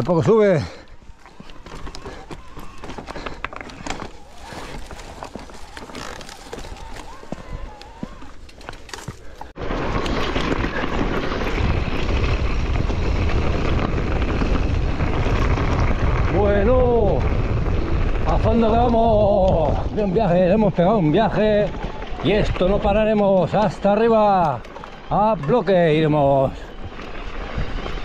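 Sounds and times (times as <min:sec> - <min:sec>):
bike rattling over gravel: 0:00.0 - 0:28.0
bike clicks and scrapes on rock: 0:01.2 - 0:16.3.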